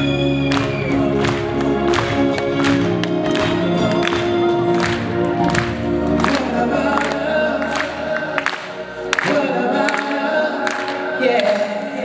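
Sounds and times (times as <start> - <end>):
live band playing: 0.0 - 12.0
voices singing together: 6.2 - 12.0.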